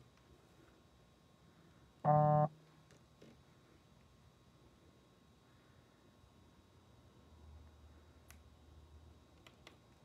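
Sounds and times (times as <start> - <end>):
short electronic beep: 2.1 - 2.5.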